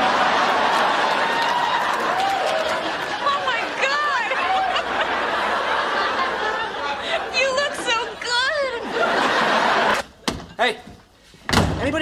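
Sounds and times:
door slamming shut: 11.5 - 12.0.

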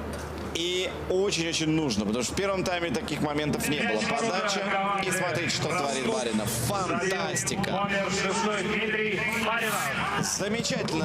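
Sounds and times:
man commentating: 0.6 - 11.0.

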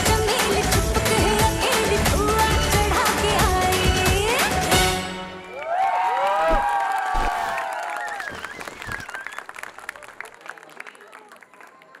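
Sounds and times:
audience applauding and cheering: 5.3 - 12.0
long drawn-out whoops: 5.5 - 9.4.

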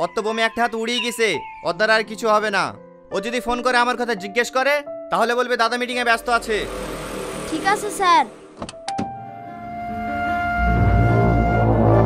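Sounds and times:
background music note: 5.8 - 12.0.

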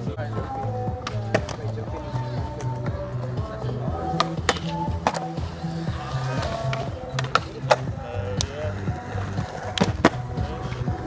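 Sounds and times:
music with steady bass line: 0.0 - 11.0
skateboard clacking on concrete: 0.6 - 11.0.

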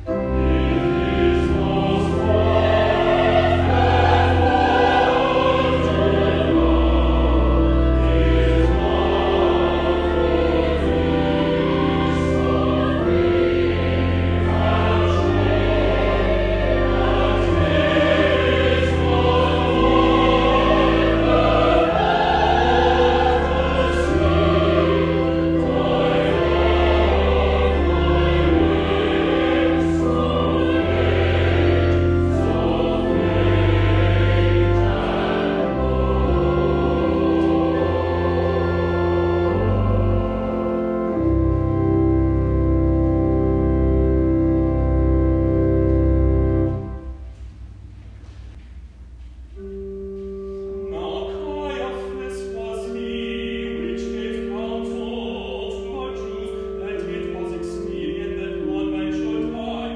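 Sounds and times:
choir singing: 0.0 - 47.2, 50.8 - 59.9
low pipe organ notes: 0.0 - 59.9.

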